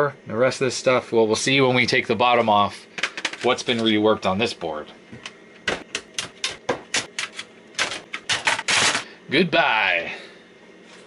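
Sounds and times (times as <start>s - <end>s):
circuit board clicking and clattering: 5.2s - 9.0s.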